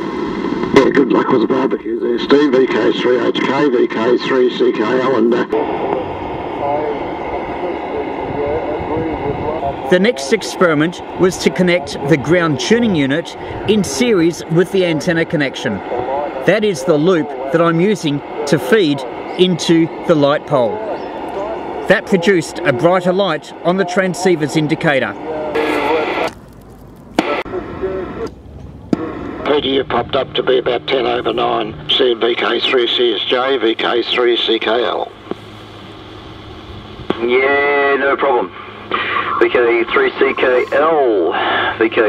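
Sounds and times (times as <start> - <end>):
radio static hiss: 0.0 - 42.0
faint garbled radio speech: 0.5 - 26.3, 27.2 - 28.3, 29.0 - 35.3, 36.4 - 42.0.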